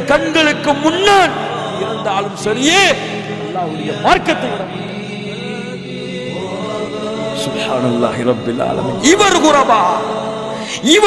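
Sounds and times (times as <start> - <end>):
choir-like vocal chanting: 0.0 - 11.0.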